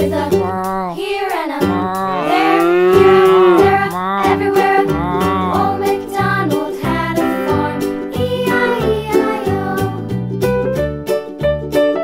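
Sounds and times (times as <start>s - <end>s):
children's song backing track: 0.0s - 12.0s
cow mooing: 2.0s - 4.2s, 4.9s - 5.7s.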